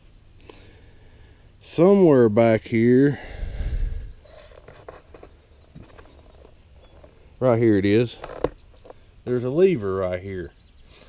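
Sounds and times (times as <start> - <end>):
faint rustles: 3.2 - 7.5.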